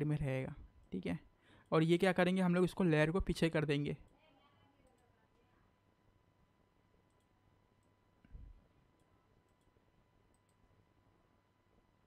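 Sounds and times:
computer mouse clicks: 0:07.0 - 0:08.0, 0:08.9 - 0:10.7.

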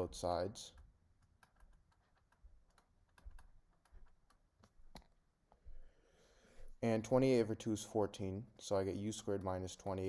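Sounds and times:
stylus tapping on drawing tablet: 0:00.8 - 0:05.2.

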